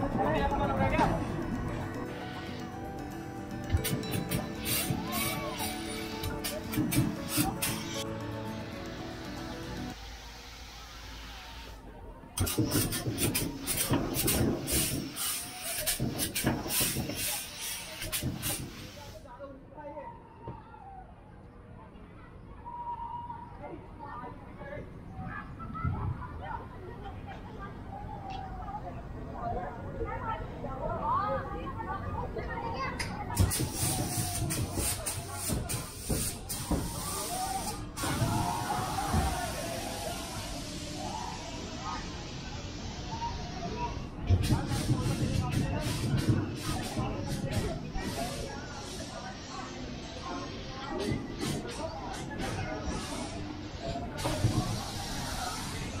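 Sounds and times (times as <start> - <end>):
children calling: 0.0 - 8.5, 25.2 - 42.3
steady hiss: 3.8 - 11.8, 33.4 - 51.9, 52.6 - 56.0
distant voices: 20.2 - 56.0.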